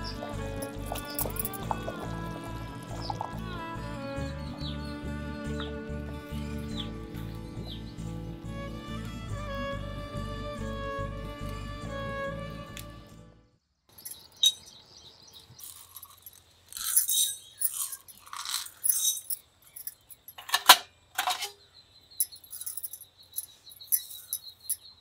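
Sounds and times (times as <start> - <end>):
metallic clinks of containers: 0.0 - 3.9, 14.0 - 14.6, 15.6 - 21.6, 22.2 - 25.0
peppercorns rattling in a pan: 0.3 - 3.4, 15.6 - 20.3
thin pulsing chirp: 21.6 - 25.0.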